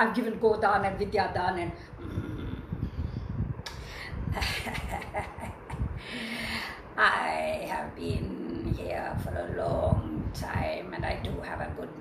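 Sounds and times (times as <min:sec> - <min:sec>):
low rumbling on microphone: 0:00.0 - 0:12.0.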